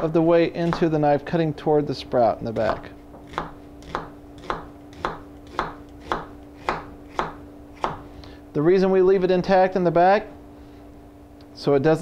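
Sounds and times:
knife slicing onion on cutting board: 0:02.6 - 0:08.0.

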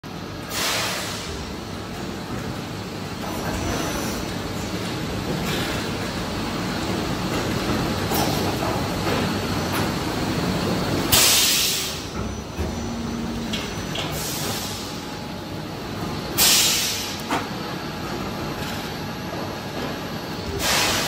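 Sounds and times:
sudden loud hiss: 0:00.5 - 0:01.3
moulding machine rumble and hum: 0:12.0 - 0:16.4.

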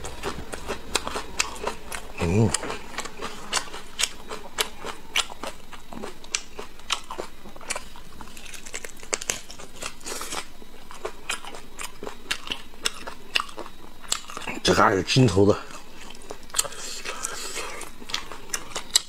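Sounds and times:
chewing meat: 0:00.0 - 0:14.7, 0:15.6 - 0:19.0.

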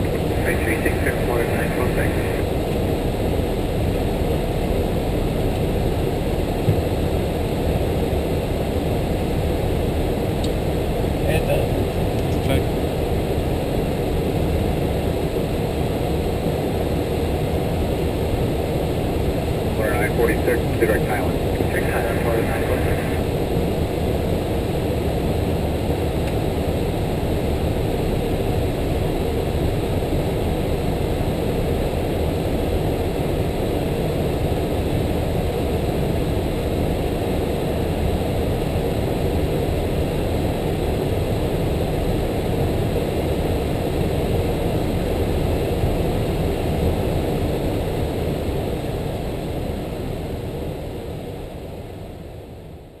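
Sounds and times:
airflow and engine rush: 0:00.0 - 0:53.0.

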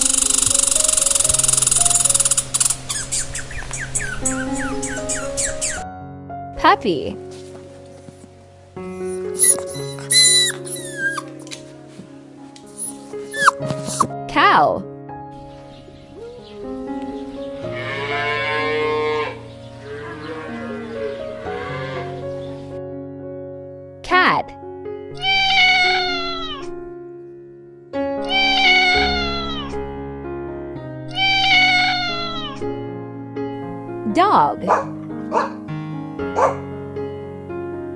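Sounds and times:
high-pitched chirping calls: 0:00.0 - 0:05.8, 0:09.0 - 0:11.3, 0:12.8 - 0:14.1
soft background music: 0:00.0 - 0:37.9
cow mooing: 0:17.7 - 0:22.2, 0:34.7 - 0:35.6.

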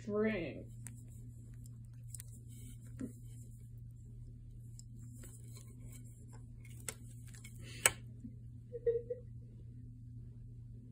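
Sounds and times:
low room hum: 0:00.0 - 0:10.9.

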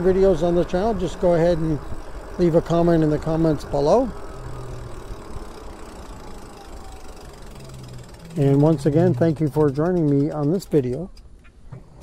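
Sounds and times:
faint motor whine: 0:00.0 - 0:09.4
wind and road noise: 0:00.0 - 0:12.0.

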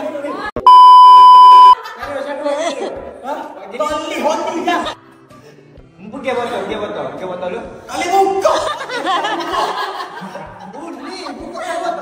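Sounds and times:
test-tone beep: 0:00.6 - 0:01.8
people laughing: 0:08.4 - 0:12.0.

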